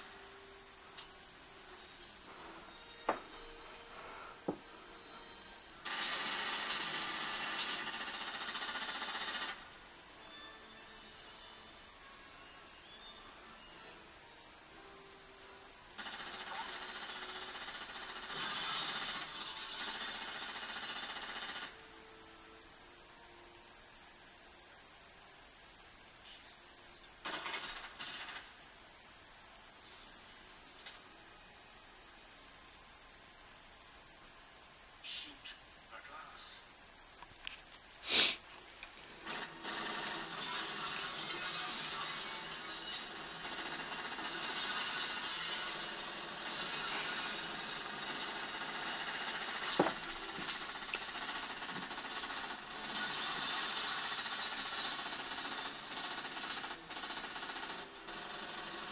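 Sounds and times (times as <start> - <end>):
rapid automatic gunfire: 5.8 - 9.7, 16.0 - 21.8, 27.2 - 28.6, 39.2 - 58.9.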